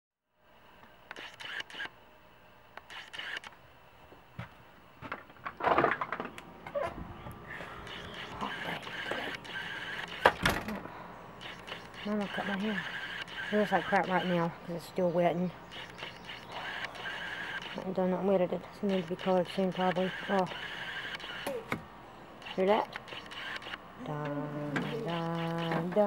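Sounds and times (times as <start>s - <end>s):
camera handling noise: 1.1s - 1.9s, 2.8s - 3.6s, 7.8s - 10.8s, 11.4s - 14.4s, 15.7s - 17.9s, 18.9s - 21.8s, 22.4s - 23.8s
loud thumps: 7.9s - 10.8s.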